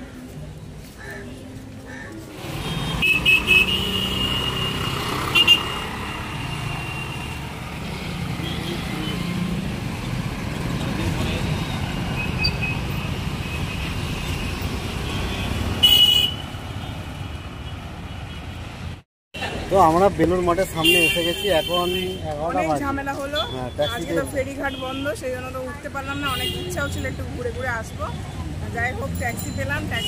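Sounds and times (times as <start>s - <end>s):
motorbike and car engines: 2.2s - 20.7s.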